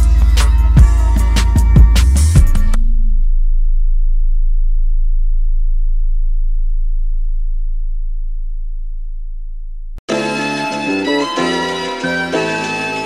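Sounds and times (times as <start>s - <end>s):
deep bass note ringing: 2.4s - 10.0s.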